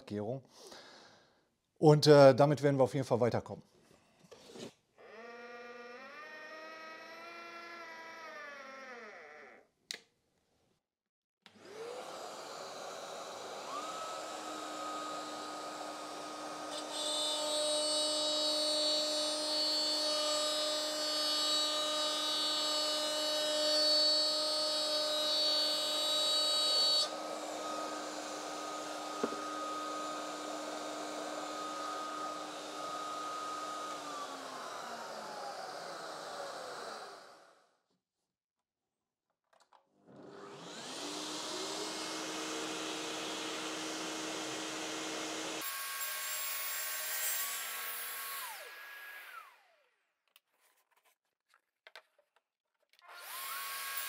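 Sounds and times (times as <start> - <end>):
router whining: 5.0 - 8.6, 11.5 - 37.6, 40.0 - 49.8, 53.0 - 54.0
vacuum dust extractor: 11.5 - 37.5, 40.1 - 49.6
router cutting wood panel: 11.5 - 37.6, 40.0 - 49.8, 53.0 - 54.0.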